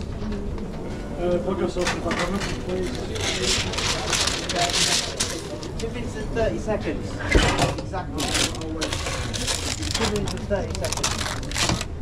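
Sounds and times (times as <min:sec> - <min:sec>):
paper rustling and crinkling: 0:02.0 - 0:06.0, 0:08.2 - 0:12.0.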